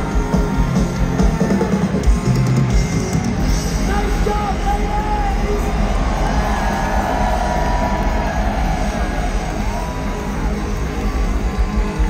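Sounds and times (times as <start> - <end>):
live heavy rock band: 0.0 - 12.0.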